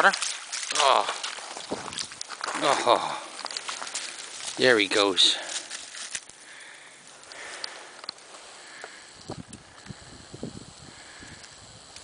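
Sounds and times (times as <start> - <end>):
dry leaves crackling: 0.0 - 10.2.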